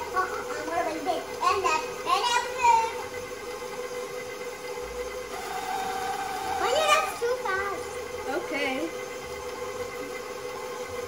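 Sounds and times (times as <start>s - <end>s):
stand mixer motor humming: 3.3s - 11.0s.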